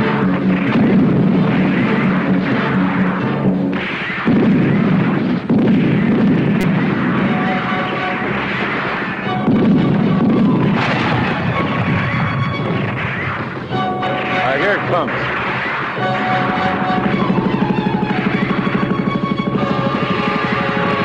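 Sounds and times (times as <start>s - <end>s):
dramatic film music: 0.0s - 21.0s
explosions: 0.0s - 21.0s
gunfire: 0.0s - 21.0s.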